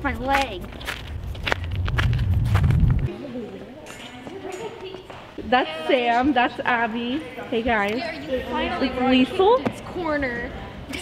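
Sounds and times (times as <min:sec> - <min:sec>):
footsteps crunching on snow: 0:00.2 - 0:03.1
low rumble: 0:00.8 - 0:03.1.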